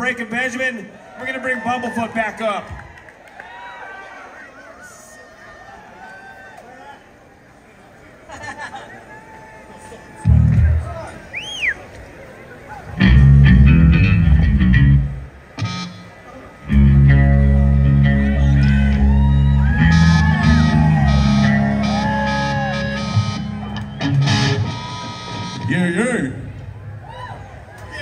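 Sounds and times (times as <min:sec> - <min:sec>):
electric bass notes: 0:10.2 - 0:11.0, 0:13.0 - 0:27.0
electric guitar chord and bends: 0:13.0 - 0:25.7.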